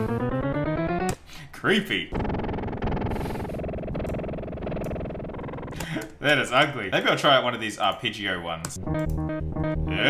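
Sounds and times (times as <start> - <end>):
distorted pitch-shifting music loop: 0.0 - 1.2, 2.1 - 5.8, 8.8 - 10.0.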